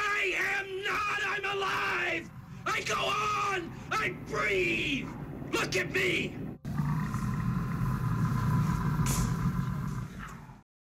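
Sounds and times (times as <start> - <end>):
steady low rumble: 6.2 - 10.6.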